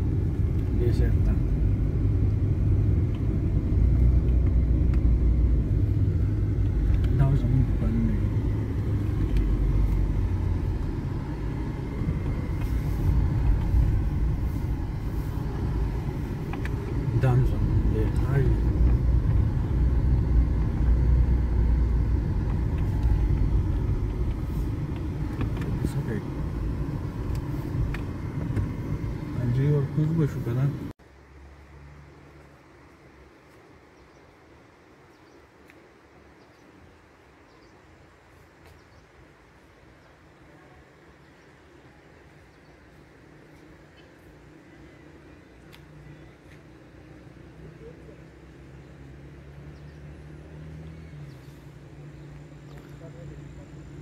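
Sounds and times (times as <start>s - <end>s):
car interior engine and road rumble: 0.0s - 35.0s, 37.0s - 54.0s.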